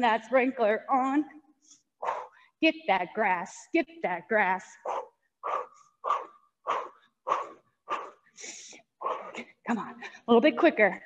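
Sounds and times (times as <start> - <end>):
person breathing hard: 6.7 - 9.4.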